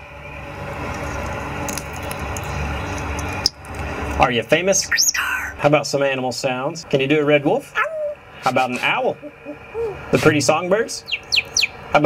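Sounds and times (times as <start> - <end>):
steady hissing noise: 0.0 - 12.0
parrot talking: 4.7 - 5.7, 7.6 - 11.7.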